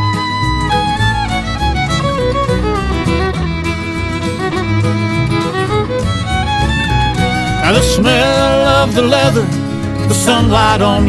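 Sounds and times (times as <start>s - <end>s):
fiddle melody: 0.0s - 11.0s
low steady accompaniment: 0.0s - 11.0s.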